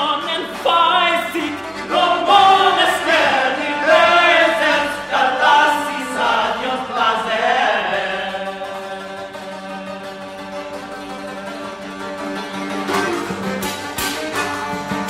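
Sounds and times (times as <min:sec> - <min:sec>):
men chanting a song: 0:01.9 - 0:09.1.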